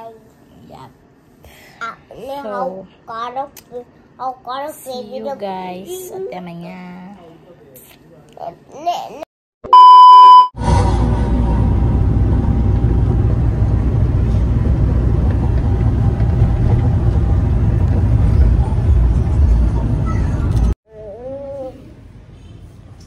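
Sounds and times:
vehicle cabin road rumble: 10.6s - 20.8s.

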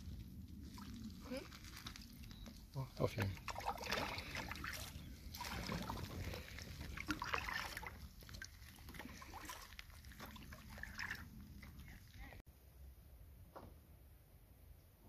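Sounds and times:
water sloshing around hull: 0.0s - 12.4s
paddle splashing in water: 3.1s - 12.2s.

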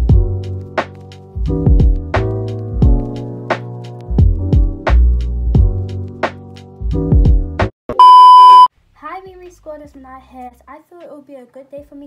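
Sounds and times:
test-tone beep: 8.0s - 8.7s.

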